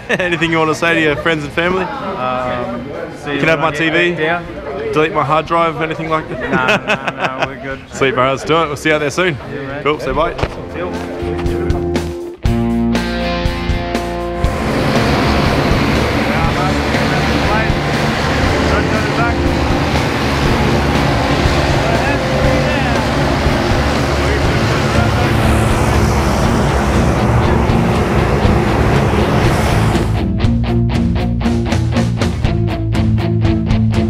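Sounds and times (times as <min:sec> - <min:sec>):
background music: 0:10.3 - 0:34.0
propeller aircraft engine: 0:14.4 - 0:30.4.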